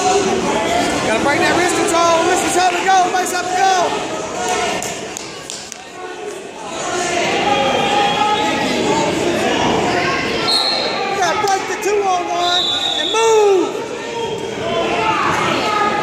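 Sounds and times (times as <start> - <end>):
voices calling and shouting: 0.0 - 16.0.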